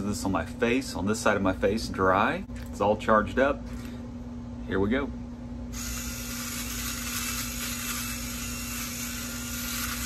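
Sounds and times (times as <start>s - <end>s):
electric shaver buzzing: 5.7s - 10.0s.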